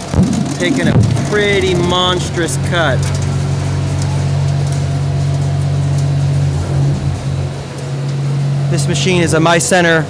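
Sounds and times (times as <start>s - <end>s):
milling machine drone: 0.0s - 10.0s.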